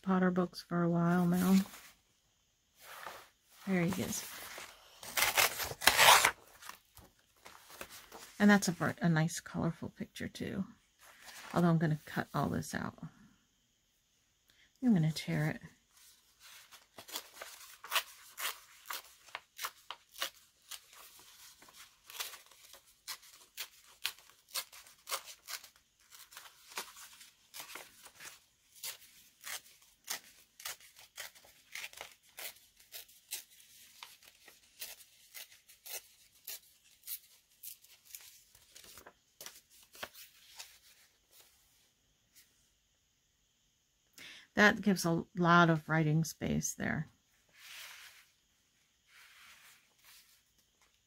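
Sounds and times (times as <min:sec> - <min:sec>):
paper page tearing: 0:03.9 - 0:06.8, 0:17.0 - 0:39.1.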